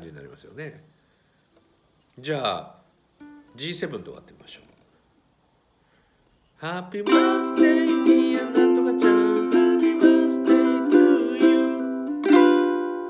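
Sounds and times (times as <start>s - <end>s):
ukulele strumming chords: 3.2s - 3.6s, 7.0s - 13.0s.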